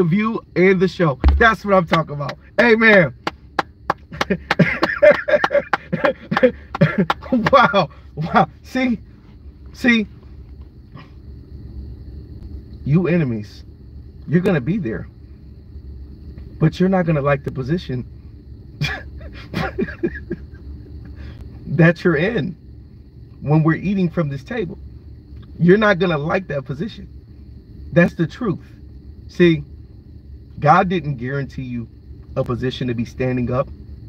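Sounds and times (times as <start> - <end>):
person clapping hands: 3.2 - 7.6
laughter: 4.1 - 7.8, 18.8 - 20.6
man chuckling quietly: 4.1 - 8.5, 18.8 - 21.2.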